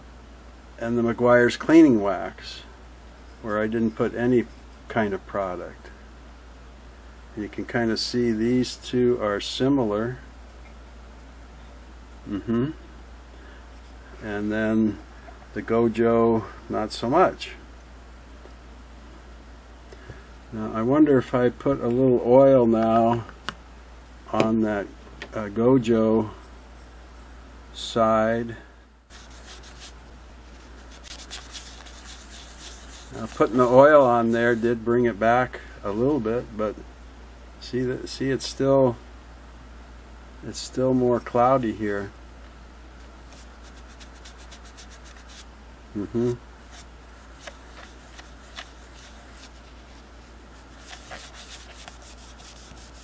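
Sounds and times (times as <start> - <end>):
cloth rubbing on metal: 29.1 - 34.8, 43.3 - 45.5, 46.7 - 53.0.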